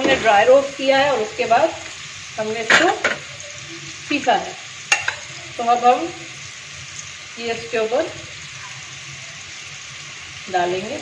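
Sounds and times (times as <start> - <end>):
liver sizzling on a griddle: 0.0 - 11.0.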